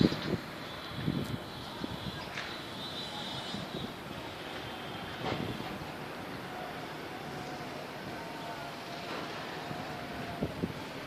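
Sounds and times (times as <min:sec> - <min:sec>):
distant city traffic: 0:00.0 - 0:11.0.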